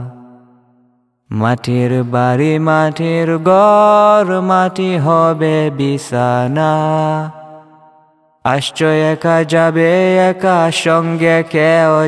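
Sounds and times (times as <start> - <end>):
man singing: 0.0 - 0.5, 1.3 - 7.8, 8.5 - 12.0.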